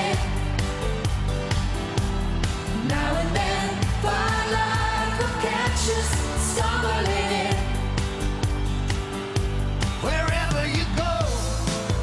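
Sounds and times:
live band playing pop song: 0.0 - 12.0.

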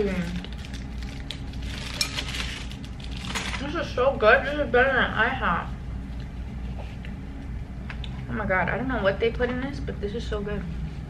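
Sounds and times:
plastic crinkles: 0.0 - 4.0.

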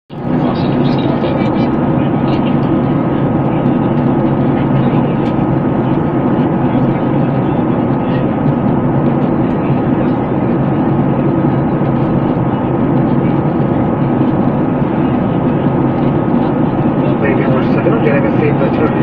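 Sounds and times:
airliner cabin engine rush: 0.1 - 19.0
thin steady whine: 0.2 - 19.0.

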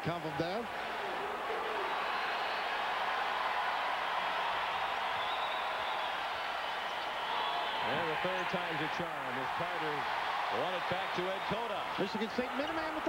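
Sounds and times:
arena crowd cheering: 0.0 - 13.0.

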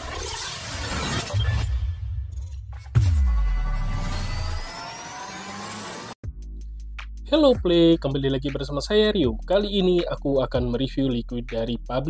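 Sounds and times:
sharp crash-like hit: 1.5 - 4.8
deep bass tone: 6.2 - 12.0.

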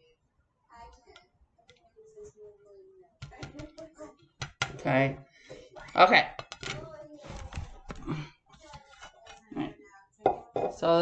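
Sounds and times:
fingertips tapping vinyl stickers: 3.2 - 4.9.

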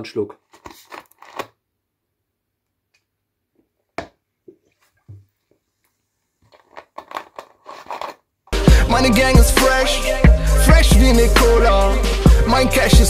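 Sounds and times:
plastic bottle clicks and crackles: 0.5 - 1.6, 6.5 - 8.2.

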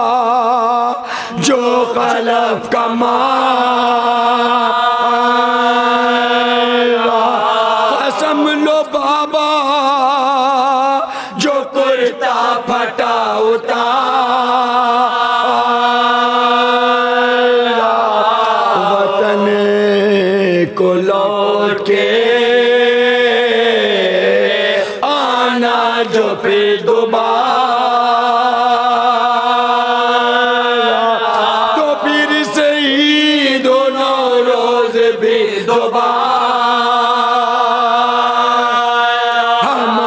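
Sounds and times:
men chanting a lament: 0.0 - 40.0
lead voice at a microphone: 18.6 - 22.2, 38.4 - 40.0.

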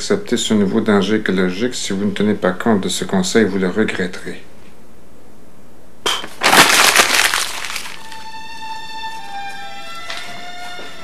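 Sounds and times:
glass breaking: 6.1 - 8.2.

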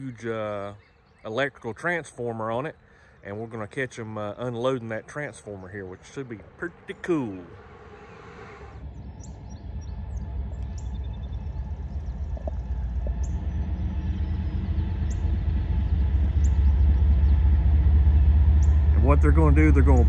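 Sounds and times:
bird chirps: 0.0 - 17.7
diesel locomotive rumble: 3.0 - 20.0.

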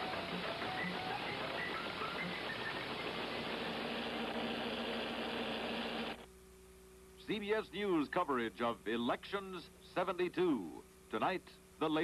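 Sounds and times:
tape hiss: 0.0 - 12.0
faint low hum: 3.0 - 12.0.

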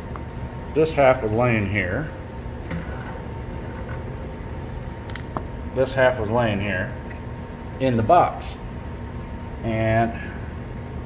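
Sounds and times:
low background hum: 0.0 - 11.0
faint clicks of parts handled: 5.1 - 5.4.

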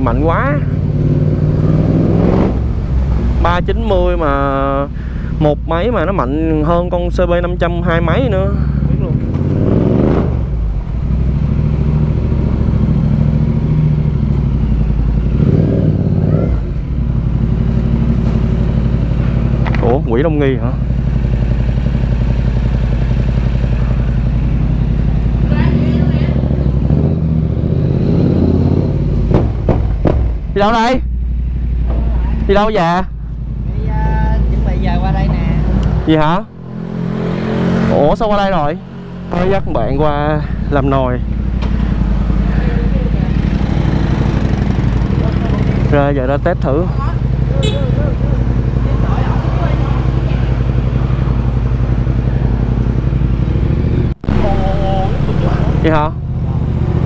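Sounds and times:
motorcycle engine running: 0.0 - 57.0
sharp knocks: 29.2 - 30.6.

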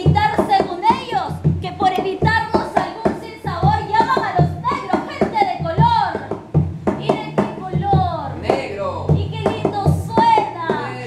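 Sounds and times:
woman singing: 0.0 - 6.4, 7.0 - 11.0
low thumps and percussive hits: 0.0 - 11.0.

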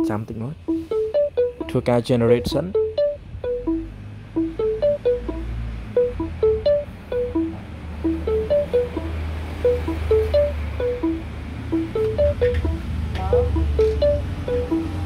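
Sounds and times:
looping melody of plucked notes: 0.0 - 15.0.

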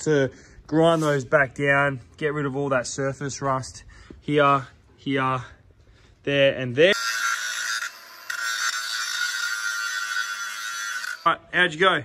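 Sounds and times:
angle grinder grinding metal: 6.8 - 11.5.

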